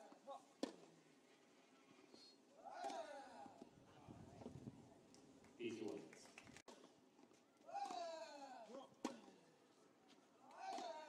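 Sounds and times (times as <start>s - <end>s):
tennis racquet hitting ball: 2.8s - 3.2s, 10.6s - 11.0s.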